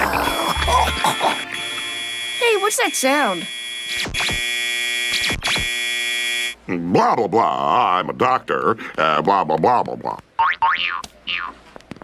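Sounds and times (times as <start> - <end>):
high electronic buzzing drone: 0.0 - 6.6.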